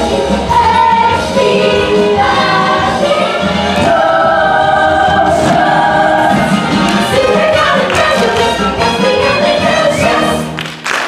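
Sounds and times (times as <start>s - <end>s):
ensemble singing in chorus: 0.0s - 10.6s
musical accompaniment: 0.0s - 11.0s.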